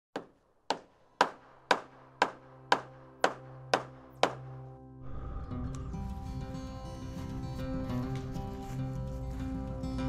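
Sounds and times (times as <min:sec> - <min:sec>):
sharp evenly spaced knocks: 0:00.2 - 0:04.8.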